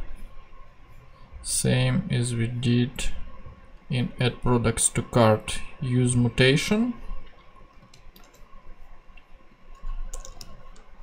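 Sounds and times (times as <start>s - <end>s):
keyboard and mouse clicks: 7.7s - 8.5s, 9.7s - 11.0s.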